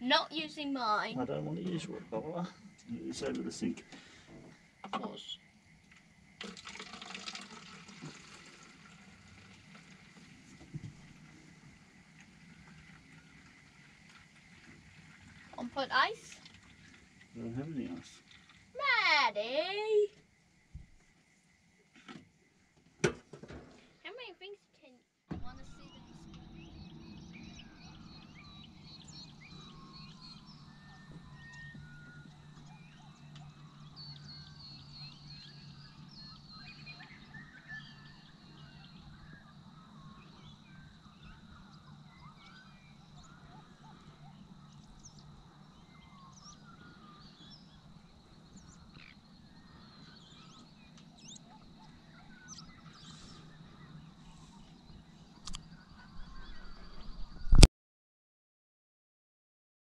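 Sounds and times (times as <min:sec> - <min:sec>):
steady low hum: 0:00.0 - 0:06.4, 0:25.3 - 0:57.6
birds chirping and whistling: 0:25.4 - 0:57.6.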